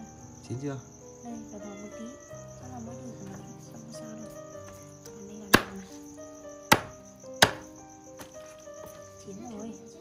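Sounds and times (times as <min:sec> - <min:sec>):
crickets chirping: 0:00.0 - 0:10.0
cleaver chopping on wooden block: 0:05.5 - 0:05.8, 0:06.7 - 0:08.3.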